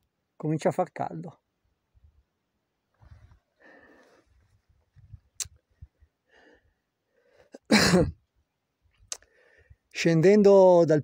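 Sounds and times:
faint soft noises: 2.8 - 6.1
man coughing: 7.6 - 8.2.

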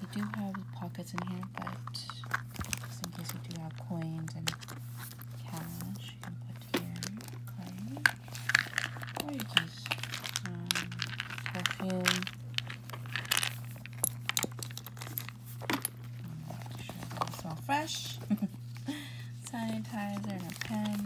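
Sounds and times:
rustling and crinkling: 0.0 - 21.0
steady low hum: 0.0 - 21.0.

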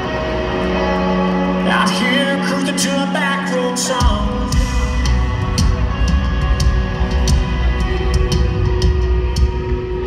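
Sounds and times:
live country band playing: 0.0 - 10.0.

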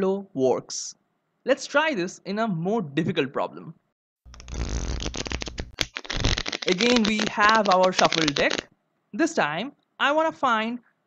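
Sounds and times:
playing cards being shuffled: 4.3 - 8.7
sharp card snap: 5.0 - 8.6.

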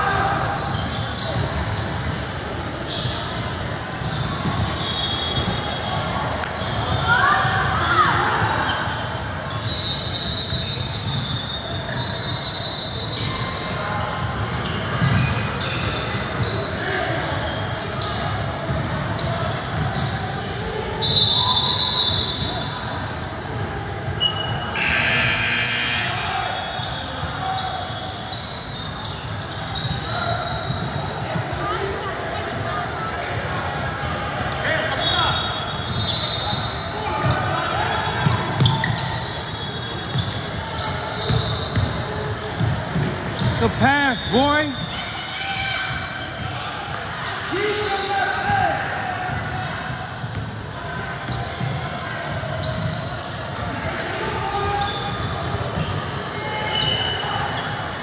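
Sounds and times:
sneaker squeaks: 0.0 - 58.0.

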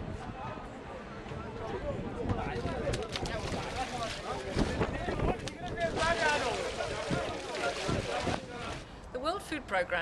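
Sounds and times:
wind rumbling on microphone: 0.0 - 9.0
people talking and calling: 0.0 - 10.0.

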